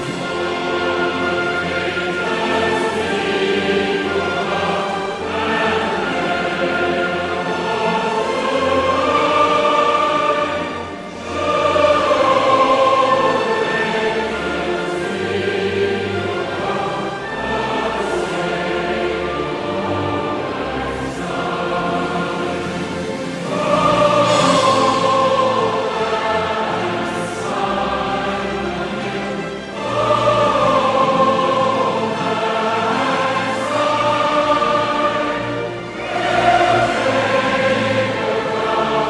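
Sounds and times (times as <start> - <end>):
choir singing held notes: 0.0 - 39.0
orchestral music: 0.0 - 39.0.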